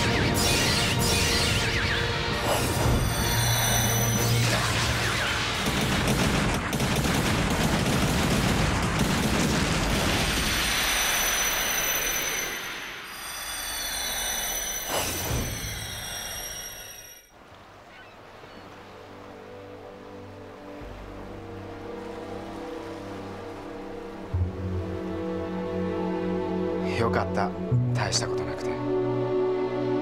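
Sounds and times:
falling whistling tones: 10.5s - 17.3s
quiet background music: 18.3s - 30.0s.

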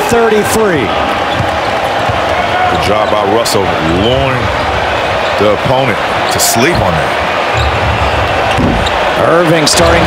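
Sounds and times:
crowd and court din: 0.0s - 10.0s.

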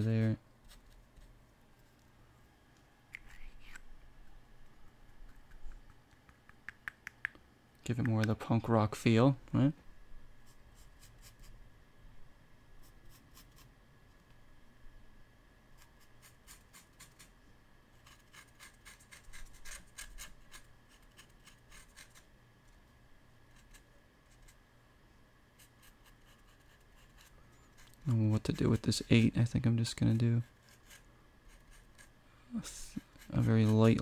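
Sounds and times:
paintbrush strokes on paper: 32.7s - 34.0s.

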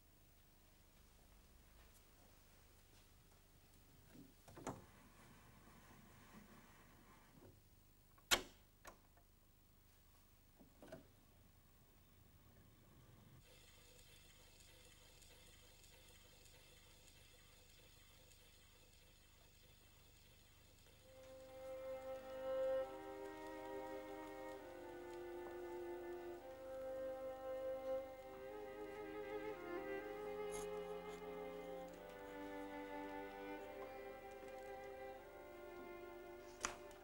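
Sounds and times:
record surface hiss: 0.0s - 37.0s
bowed string music: 21.0s - 37.0s.

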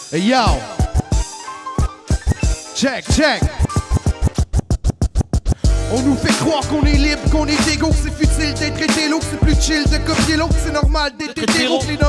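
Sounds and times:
beat with deep bass: 0.8s - 1.2s, 2.1s - 12.0s
vinyl record scratching: 2.1s - 5.6s.

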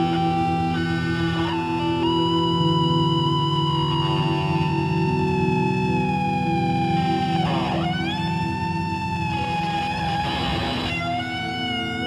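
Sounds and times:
guitar held note sinking in pitch: 0.0s - 12.0s
low droning guitar notes: 0.0s - 12.0s
noisy guitar swoop: 0.0s - 12.0s.

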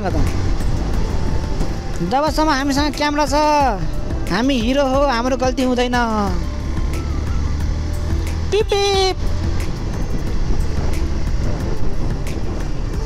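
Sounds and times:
motorcycle engine rumble: 0.0s - 13.0s
wind on microphone: 9.2s - 13.0s.

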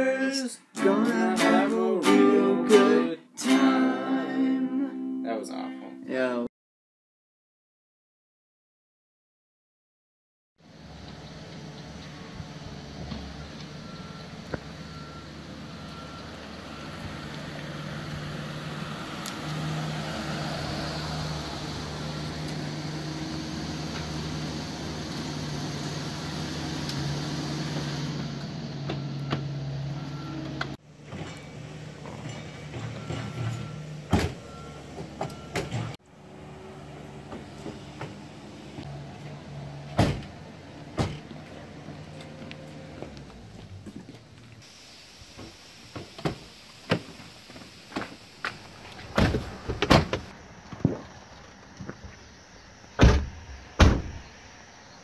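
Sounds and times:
reversing alarm beeps: 13.8s - 17.3s, 29.0s - 30.5s, 32.8s - 35.9s.

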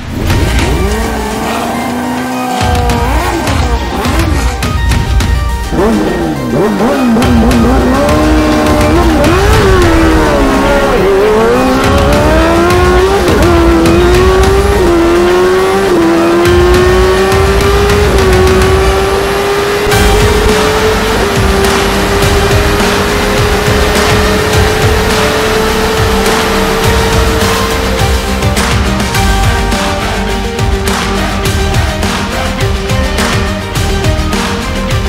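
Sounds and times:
high-revving engine accelerating: 0.0s - 32.2s
music: 0.0s - 35.0s.

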